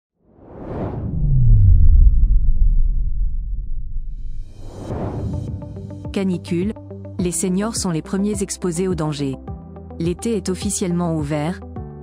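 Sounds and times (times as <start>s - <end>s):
whoosh: 0.2s - 6.1s
deep bass tone sliding downward: 0.4s - 6.0s.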